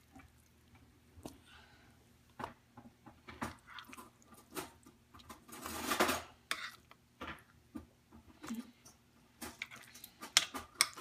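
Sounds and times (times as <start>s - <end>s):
spoon scraping dish: 5.6s - 7.0s, 9.5s - 11.0s.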